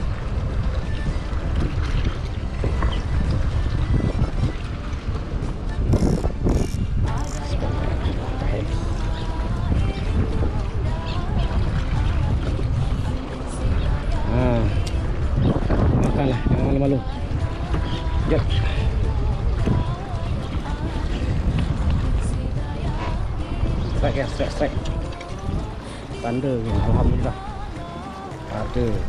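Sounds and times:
choppy water lapping: 0:00.0 - 0:29.0
wind rumble on microphone: 0:00.0 - 0:29.0.

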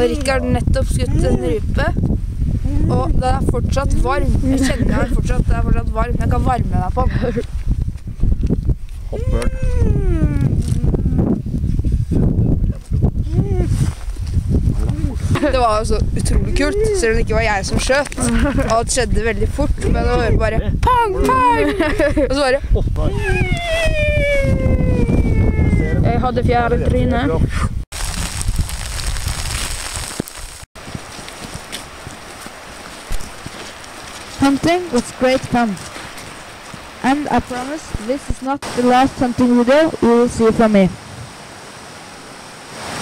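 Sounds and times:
wind buffeting microphone: 0:00.0 - 0:41.4
short vocal sounds from person: 0:09.1 - 0:11.3.

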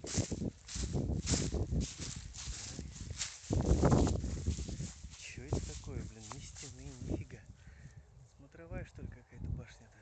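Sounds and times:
footsteps through dry grass: 0:00.0 - 0:08.5.

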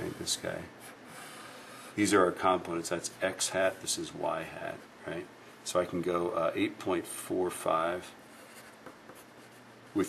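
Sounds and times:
pencil scratching on paper: 0:00.0 - 0:02.0, 0:08.3 - 0:10.0.

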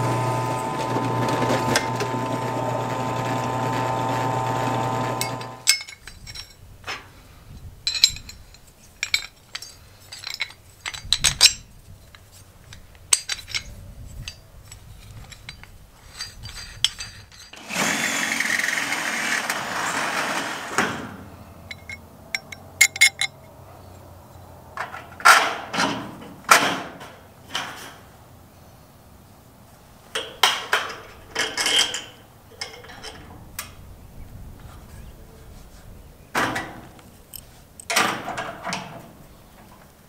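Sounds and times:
cordless drill drilling into metal: 0:00.0 - 0:05.6, 0:17.6 - 0:20.8
metal clicks and clinks: 0:05.2 - 0:06.6, 0:07.8 - 0:17.6, 0:21.7 - 0:23.5.

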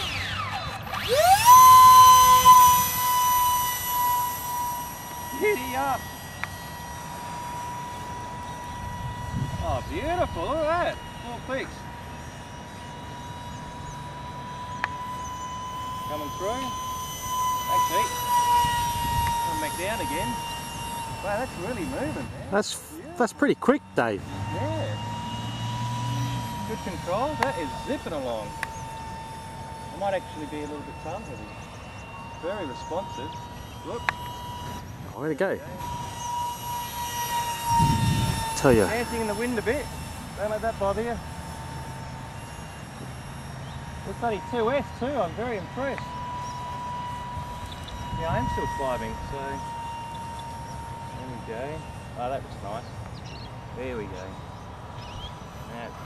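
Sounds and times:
steady high whine: 0:00.0 - 0:56.0
wind rumbling on microphone: 0:08.7 - 0:11.2, 0:18.6 - 0:20.4, 0:37.6 - 0:39.2, 0:47.4 - 0:49.6.

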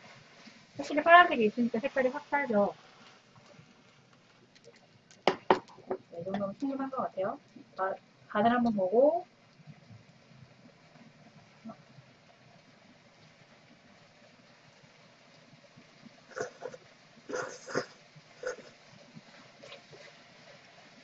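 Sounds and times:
person slurping noodles: 0:16.3 - 0:18.7.

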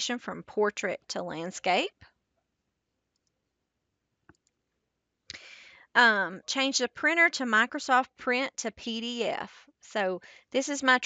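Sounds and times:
short breath: 0:05.3 - 0:05.9, 0:10.2 - 0:10.5.

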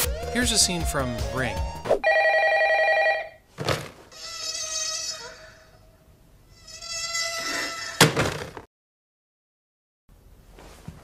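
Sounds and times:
electronic telephone ringer: 0:02.0 - 0:03.4.

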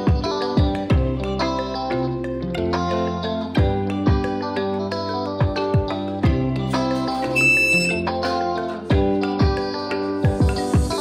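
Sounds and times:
background music: 0:00.0 - 0:11.0
key-card reader beep: 0:07.4 - 0:08.1.

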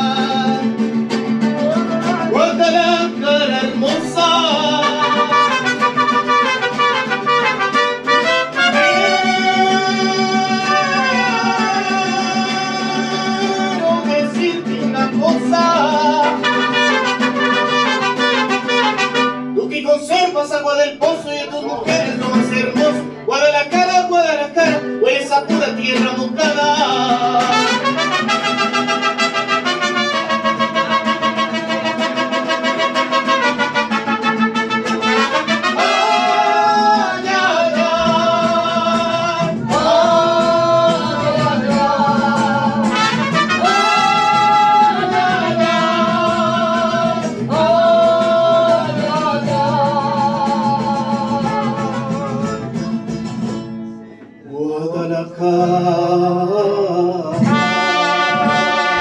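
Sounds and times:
mariachi band playing: 0:00.0 - 0:59.0.

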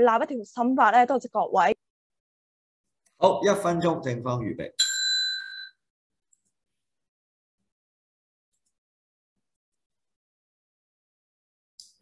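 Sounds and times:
bell ding: 0:04.8 - 0:05.8.

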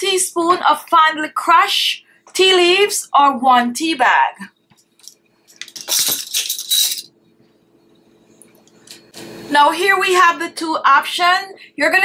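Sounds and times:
small items clicking and rustling: 0:05.0 - 0:07.1.

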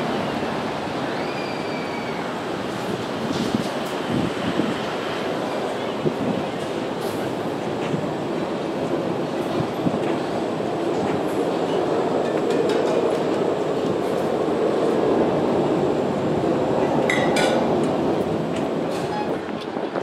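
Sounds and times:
traffic: 0:00.0 - 0:20.0.

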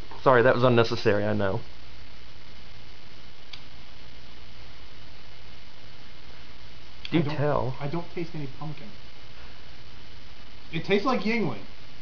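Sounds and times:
microphone hiss: 0:00.0 - 0:12.0
faint click: 0:03.5 - 0:03.7.

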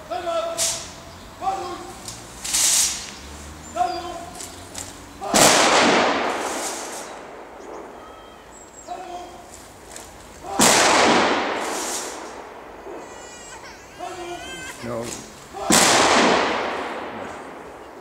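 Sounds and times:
rifle volleys echoing: 0:04.4 - 0:13.5, 0:15.0 - 0:18.0.

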